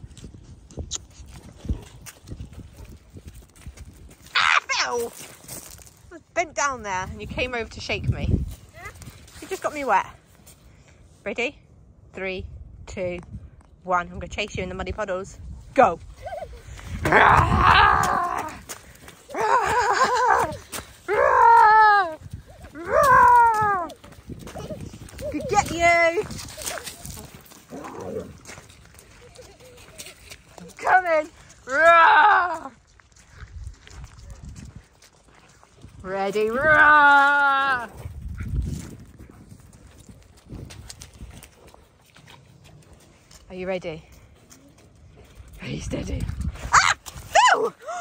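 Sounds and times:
toddler laughing and squealing: 16.2 - 16.8, 19.3 - 20.6
adult laughing: 19.5 - 20.6.

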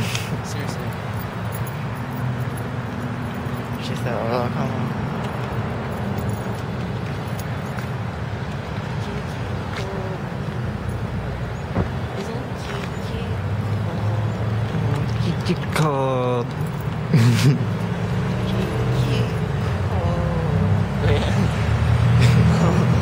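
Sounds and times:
traffic hum: 0.0 - 23.0
wind: 0.0 - 23.0.

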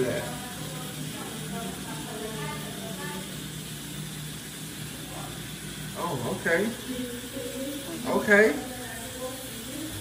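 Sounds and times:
faint talking: 5.0 - 10.0.

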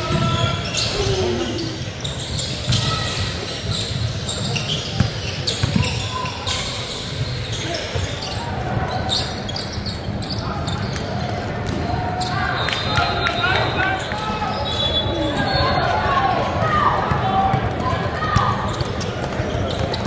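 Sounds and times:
sneakers squeaking on floor: 0.0 - 16.1, 16.7 - 20.0
voices in echoing hall: 0.0 - 20.0.

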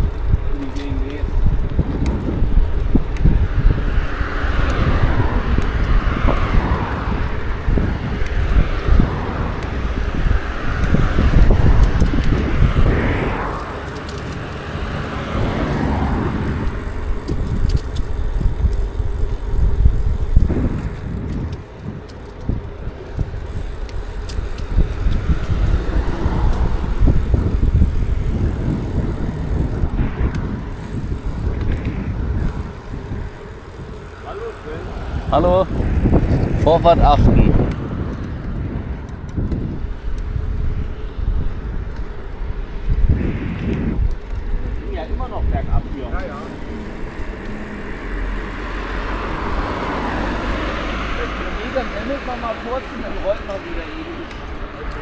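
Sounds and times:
cars passing: 0.0 - 55.0
tyre noise on asphalt: 0.0 - 55.0
wind rumbling on microphone: 0.0 - 55.0.

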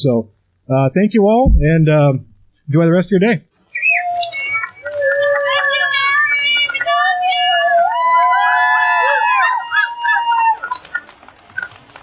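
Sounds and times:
high-pitched voices calling out: 3.8 - 11.0.

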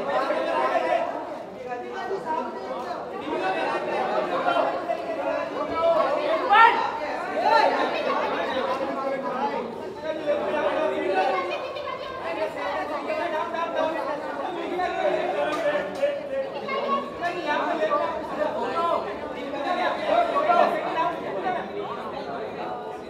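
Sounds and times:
hubbub of many people talking: 0.0 - 23.0.

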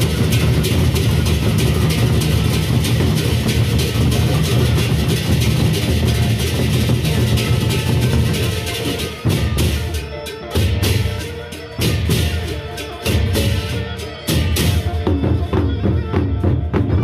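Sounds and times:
barrel drums beaten with sticks: 0.0 - 17.0.

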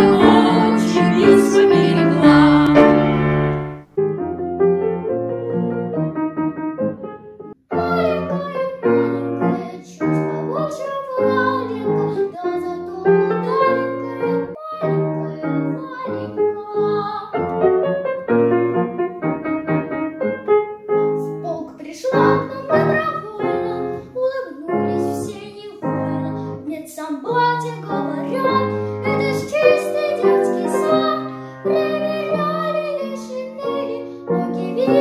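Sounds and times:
child singing: 0.0 - 3.0, 7.7 - 17.4, 21.0 - 35.0
children singing: 0.0 - 3.4, 27.9 - 35.0
instrumental accompaniment: 0.0 - 8.3
piano accompaniment: 0.0 - 35.0.

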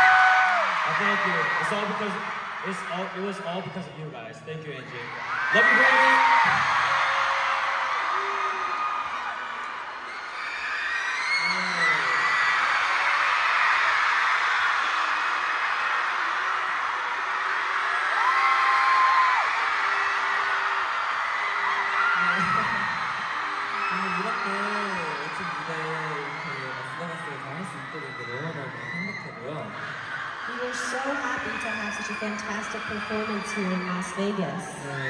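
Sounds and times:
loud held scream: 0.0 - 2.9, 5.1 - 35.0
crowd cheering and screaming: 0.0 - 3.9, 4.8 - 35.0.

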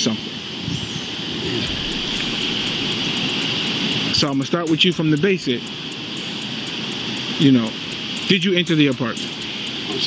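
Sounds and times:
continuous rushing hiss: 0.0 - 10.0
high-pitched tone: 0.7 - 4.2.

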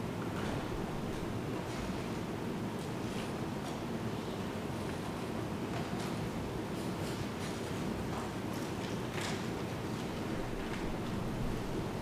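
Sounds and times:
large room background noise: 0.0 - 12.0.

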